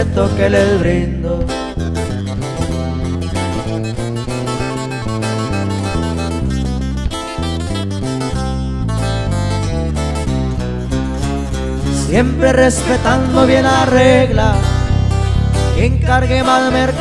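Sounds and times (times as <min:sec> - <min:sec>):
acoustic guitars picking: 0:00.0 - 0:17.0
bass line: 0:00.0 - 0:17.0.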